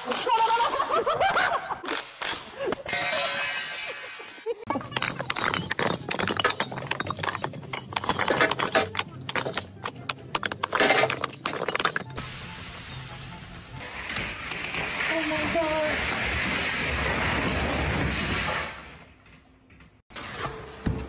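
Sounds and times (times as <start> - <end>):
bricks clattering: 2.2 - 12.2
background music: 4.8 - 14.8.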